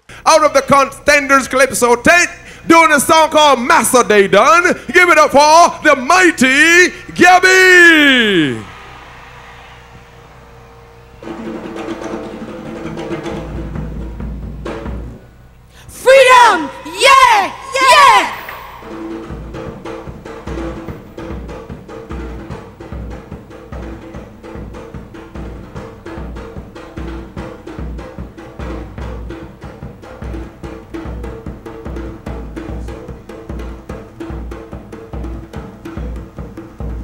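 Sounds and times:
drums playing fast beat: 1.4 - 10.2, 11.2 - 15.2, 16.0 - 37.0.

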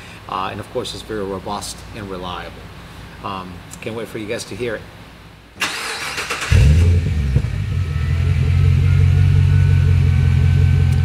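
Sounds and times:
car engine starting and idling: 5.6 - 11.0.

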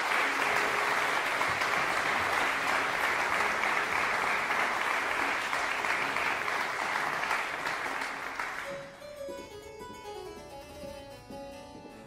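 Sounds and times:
harpsichord chords: 8.6 - 12.0.

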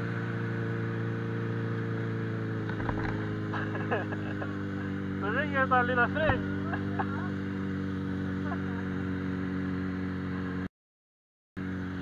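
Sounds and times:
motorcycle engine running: 0.0 - 10.7, 11.6 - 12.0.

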